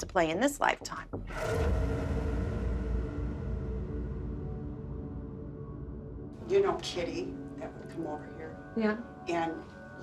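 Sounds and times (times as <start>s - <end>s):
sudden musical hit: 1.3s - 6.3s
low rumbling drone: 1.3s - 6.6s.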